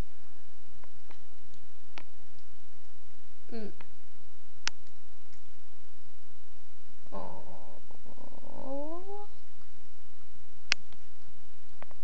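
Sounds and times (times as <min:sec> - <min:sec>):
cat growling: 0:07.1 - 0:09.4.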